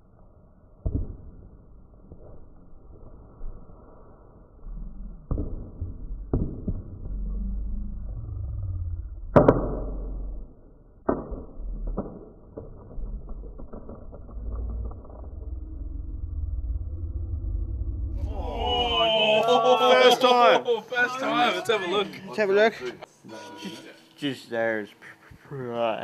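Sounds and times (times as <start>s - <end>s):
low rumble: 4.5s - 19.1s.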